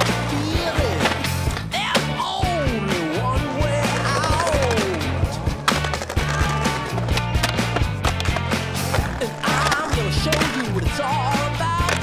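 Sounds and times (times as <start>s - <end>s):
skateboard wheels rolling: 3.2s - 12.0s
skateboard hitting concrete: 3.8s - 12.0s.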